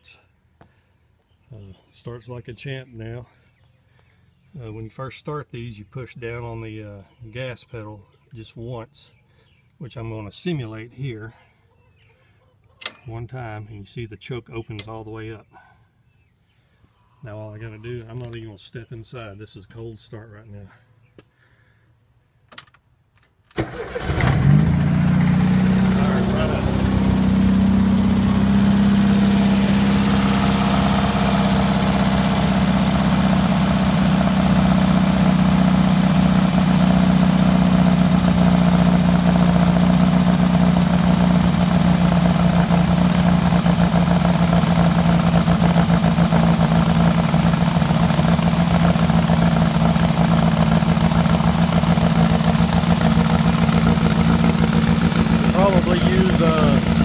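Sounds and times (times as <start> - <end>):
car engine starting and idling: 23.5 - 57.0.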